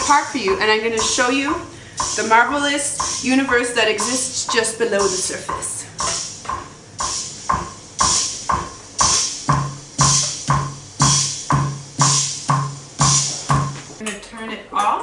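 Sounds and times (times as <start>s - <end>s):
drum machine brush and cymbal beat: 0.0s - 14.0s
low drum: 0.0s - 14.0s.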